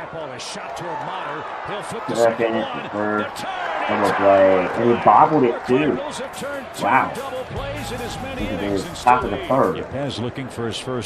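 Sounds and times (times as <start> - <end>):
indistinct talking: 1.8 - 10.7
background music: 6.6 - 9.9.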